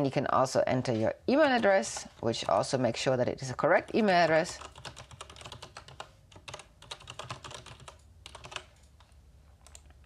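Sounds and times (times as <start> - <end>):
typing on computer keyboard: 3.9 - 10.0.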